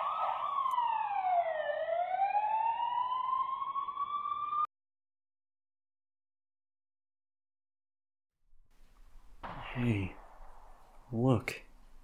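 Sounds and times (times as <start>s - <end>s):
police siren wailing: 0.0s - 4.7s.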